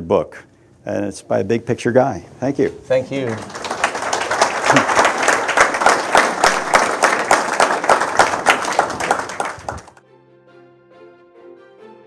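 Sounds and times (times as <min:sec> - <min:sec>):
audience applauding: 0:03.1 - 0:10.0.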